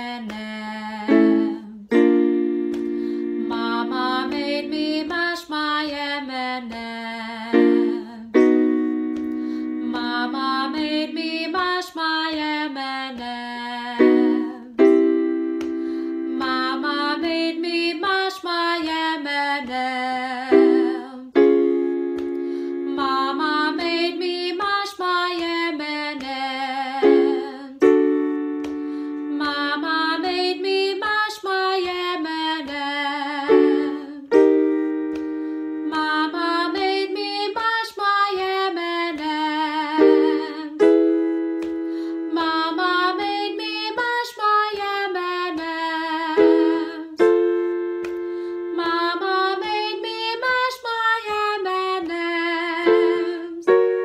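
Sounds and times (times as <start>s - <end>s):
held keyboard chords: 0.0s - 6.1s, 7.4s - 11.8s, 13.9s - 18.2s, 20.4s - 24.8s, 26.8s - 50.7s, 51.4s - 54.0s
woman singing vocal exercise: 2.8s - 8.6s, 9.3s - 21.4s, 22.4s - 27.8s, 28.7s - 34.5s, 35.8s - 47.3s, 48.1s - 53.7s.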